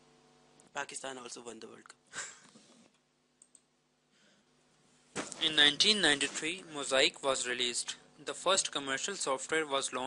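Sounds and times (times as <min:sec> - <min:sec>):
computer mouse clicks: 0:03.4 - 0:03.7.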